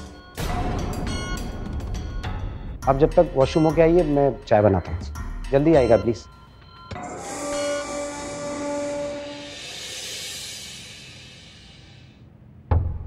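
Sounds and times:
held synth tones: 5.6s - 12.2s
hissing whoosh: 9.2s - 12.2s.

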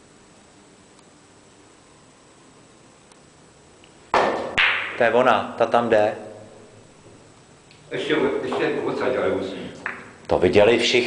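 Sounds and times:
billiard balls clacking: 4.1s - 5.1s.

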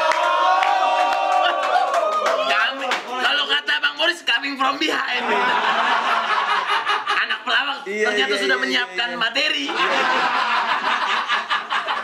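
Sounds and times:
people laughing: 1.1s - 2.0s, 4.9s - 12.0s.

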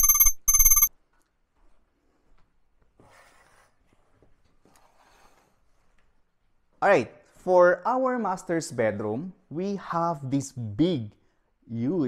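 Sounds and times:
trilling electronic ringtone: 0.0s - 0.9s.

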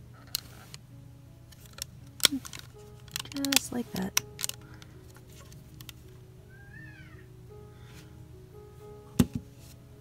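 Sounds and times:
plastic puzzle pieces clicking: 1.5s - 6.1s.

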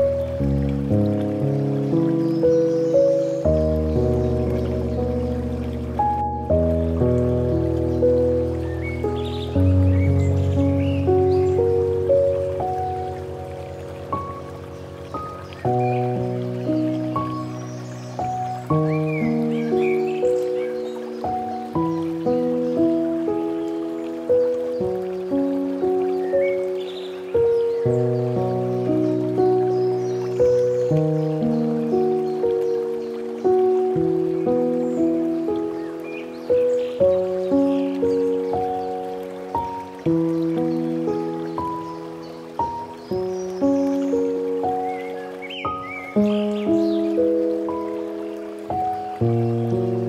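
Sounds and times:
gentle solo piano: 0.0s - 50.0s.

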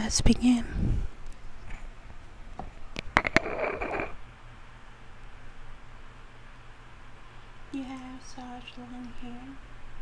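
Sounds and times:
faint low hum: 0.0s - 10.0s
scratchy rustle: 3.2s - 4.2s.

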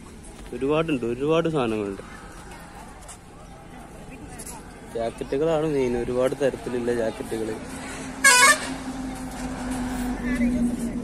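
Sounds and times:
faint voices: 0.0s - 11.0s
road traffic engine hum: 0.0s - 11.0s.

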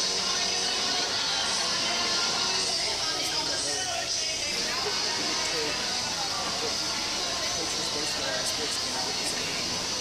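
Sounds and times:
faint background music: 0.0s - 10.0s
indistinct voices: 0.0s - 10.0s.

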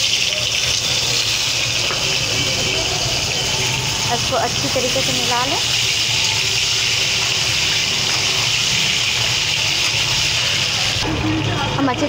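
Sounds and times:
deep frying sizzle: 0.0s - 12.0s.

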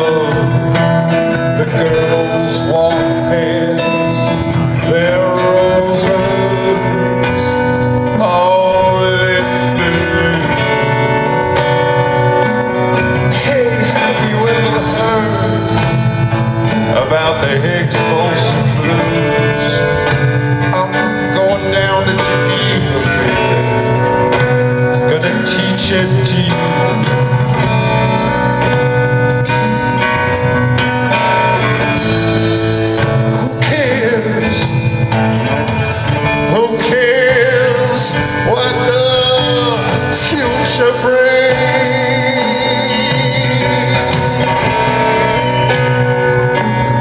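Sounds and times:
man singing long notes: 0.0s - 28.8s, 31.2s - 47.0s
live rock band playing blues: 0.0s - 47.0s.

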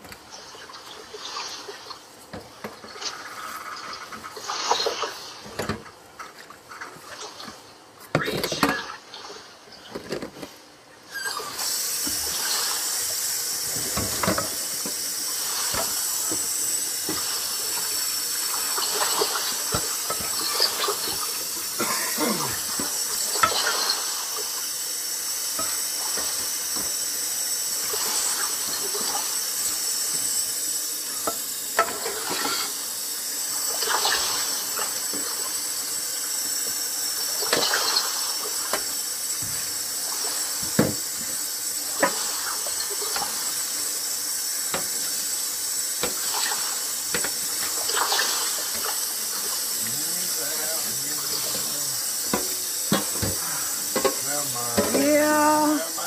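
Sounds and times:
steady hiss: 0.0s - 8.2s, 10.4s - 56.0s
faint voices: 53.4s - 56.0s.

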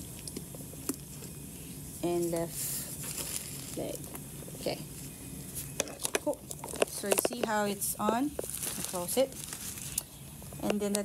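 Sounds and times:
plastic bag crinkling: 2.9s - 4.1s, 4.9s - 10.2s.

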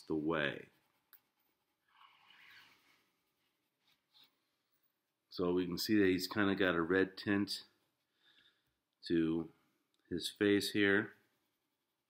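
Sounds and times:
pencil scratching on paper: 0.0s - 4.4s.

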